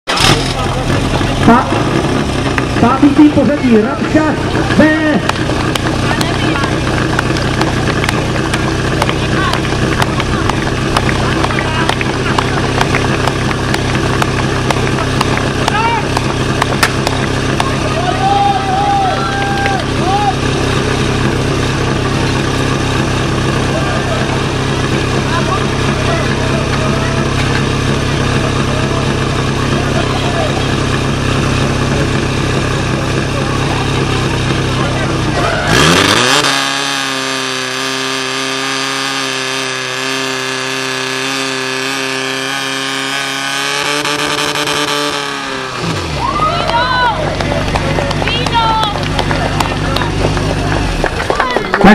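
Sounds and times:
fire pump engine running: 0:00.0 - 0:51.9
people shouting: 0:14.8 - 0:16.4, 0:17.5 - 0:20.7, 0:35.3 - 0:36.4, 0:46.0 - 0:51.9.

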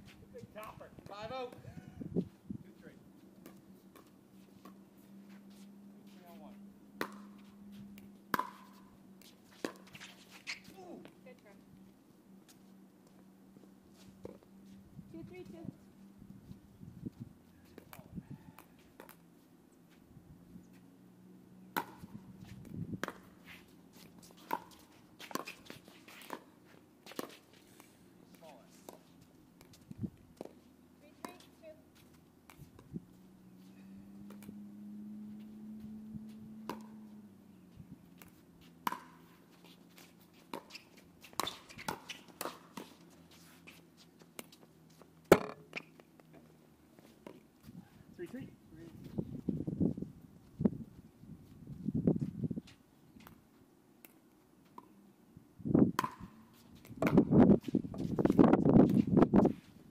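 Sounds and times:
paddles popping pickleball: 0:07.0 - 0:07.3, 0:07.9 - 0:08.7, 0:21.8 - 0:22.1, 0:45.2 - 0:46.3, 0:56.0 - 0:57.3.

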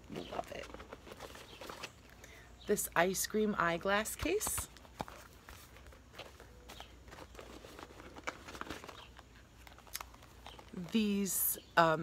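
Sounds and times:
light rustles of packaging: 0:00.0 - 0:02.2, 0:04.4 - 0:11.5.

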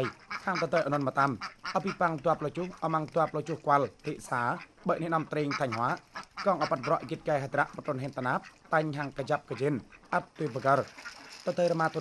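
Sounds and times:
man narrating: 0:00.0 - 0:12.0.

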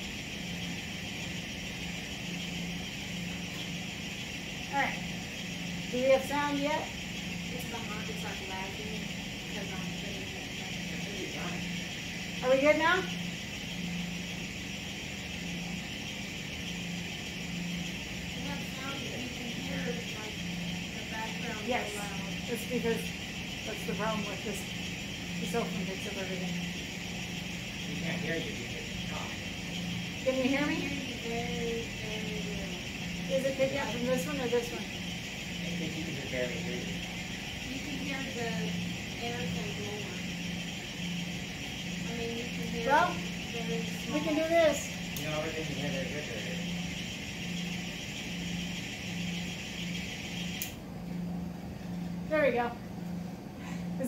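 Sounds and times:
pulsing electrical hum: 0:00.0 - 0:54.0.

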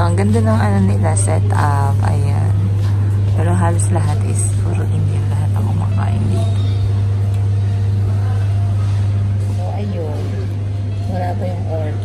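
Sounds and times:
air-conditioner low hum: 0:00.0 - 0:12.0.

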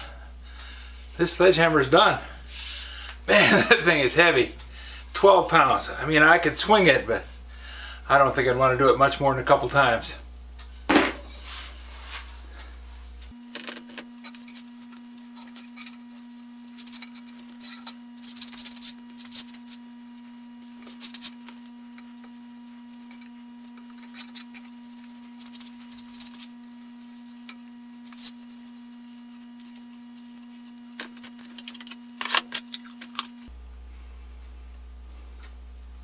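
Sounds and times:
steady hum: 0:00.0 - 0:36.0.

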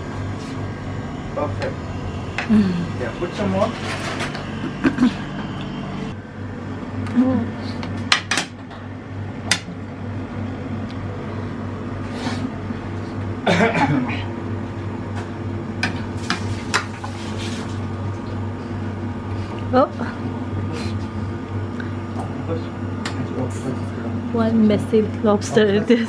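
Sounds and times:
low kitchen hum: 0:00.0 - 0:26.0.

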